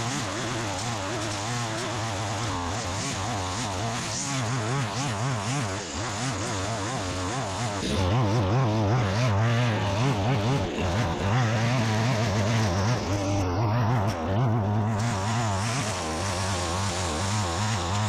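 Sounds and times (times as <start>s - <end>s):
string trimmer engine cutting grass: 0.0s - 18.0s.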